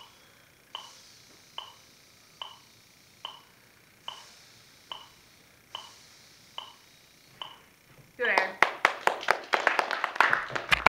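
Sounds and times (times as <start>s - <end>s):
people clapping: 8.3s - 11.0s.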